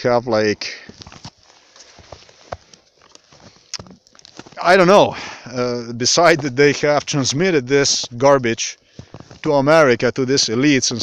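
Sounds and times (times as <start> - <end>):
footsteps on snow: 0.7 - 9.7.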